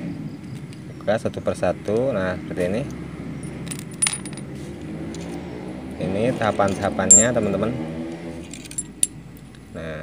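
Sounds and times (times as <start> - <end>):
metal parts clinking: 3.4 - 4.5, 7.1 - 7.4, 8.4 - 9.2.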